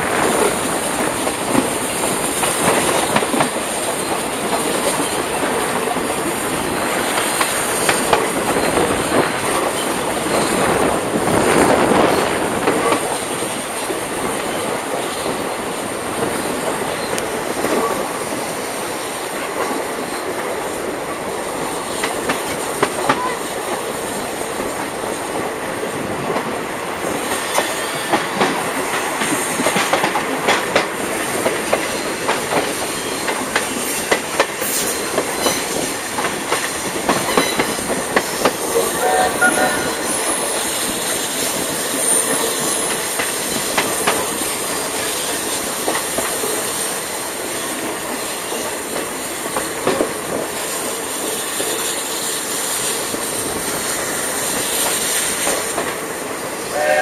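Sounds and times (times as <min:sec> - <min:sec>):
train wheels and wind rushing: 0:00.0 - 0:57.0
wheels clickety-clack on rails: 0:00.0 - 0:57.0.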